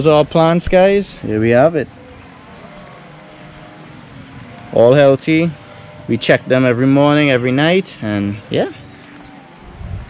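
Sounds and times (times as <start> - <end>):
faint steady tones: 0.0 - 10.0
machine hum: 0.0 - 10.0
outdoor noise: 0.0 - 10.0.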